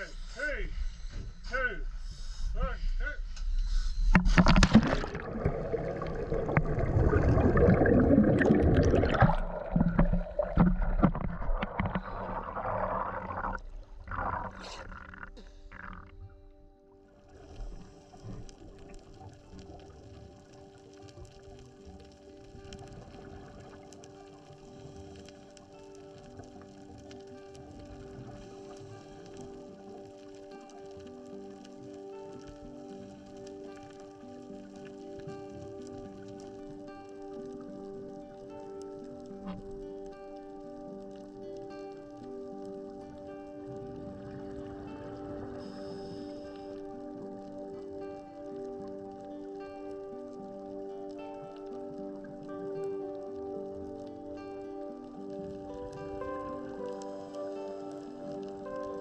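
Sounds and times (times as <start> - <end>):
quiet background music: 3.1 - 59.0
underwater bubbles: 3.5 - 59.0.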